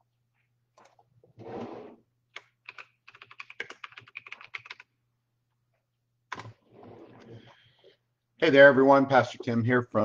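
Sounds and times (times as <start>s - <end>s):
computer keyboard typing: 2.3s - 4.9s.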